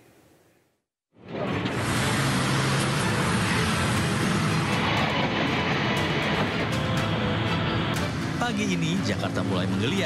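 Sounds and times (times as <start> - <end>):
cars passing: 1.5 - 10.0
motor scooters passing: 1.6 - 8.4.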